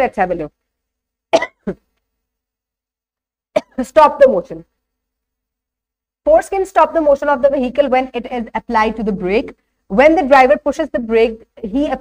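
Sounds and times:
woman coughing: 1.3s - 1.8s, 3.6s - 3.9s.

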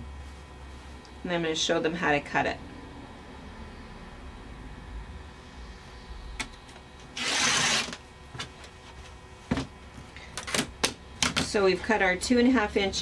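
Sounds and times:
rotary cutter cutting fabric: 7.1s - 8.0s.

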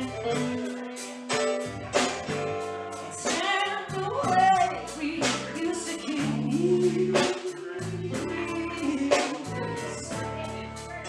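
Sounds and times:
woman singing: 0.0s - 1.2s, 3.1s - 11.0s
electric bass guitar: 0.0s - 11.0s
keyboard: 0.0s - 11.0s.

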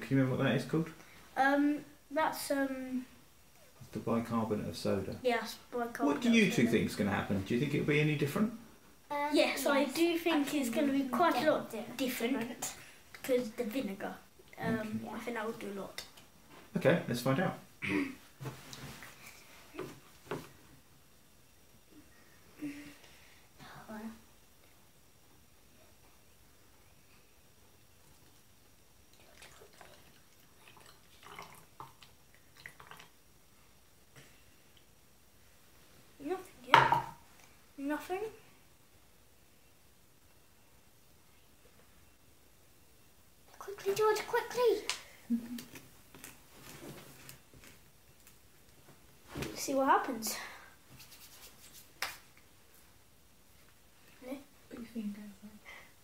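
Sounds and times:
liquid trickling and dripping: 29.1s - 33.2s
hands rubbing together: 51.0s - 52.3s
finger snap: 52.0s - 52.2s.

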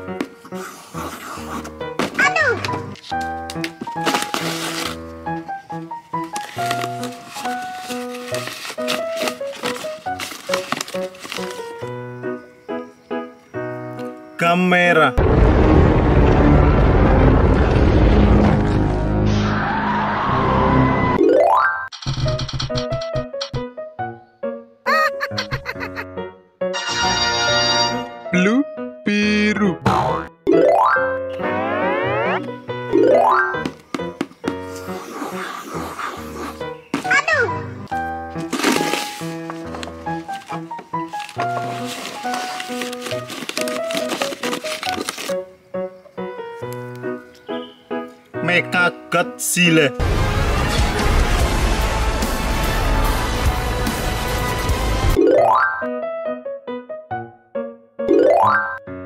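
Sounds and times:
background music: 0.0s - 17.6s, 18.8s - 59.0s
paper crinkling and tearing: 3.8s - 5.1s, 6.2s - 11.9s, 37.9s - 45.5s
background music with plucked melody: 21.2s - 24.6s, 29.6s - 34.4s, 54.8s - 59.0s.

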